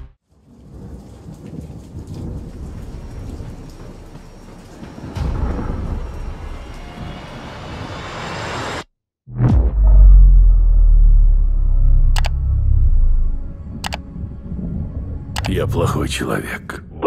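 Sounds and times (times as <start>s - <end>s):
thunder rumbling: 0.0s - 8.6s, 10.0s - 16.6s
heavy rain: 0.2s - 8.7s.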